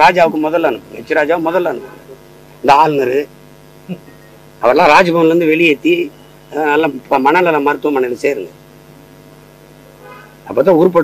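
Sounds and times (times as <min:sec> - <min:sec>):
man speaking into microphones: 0:00.0 - 0:03.3, 0:04.6 - 0:08.6, 0:10.4 - 0:11.0
low electrical hum: 0:00.0 - 0:11.0.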